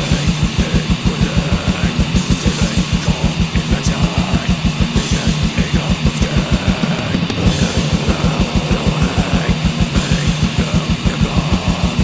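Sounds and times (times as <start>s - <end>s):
distorted electric guitars: 0.0s - 12.0s
metal band playing: 0.0s - 12.0s
rapid kick drum beats: 0.0s - 12.0s.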